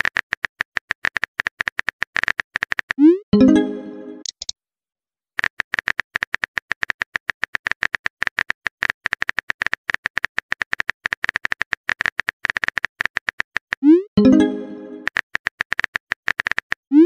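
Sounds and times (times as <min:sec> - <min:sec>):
phone keyboard typing clicks: 0:04.2 - 0:04.5.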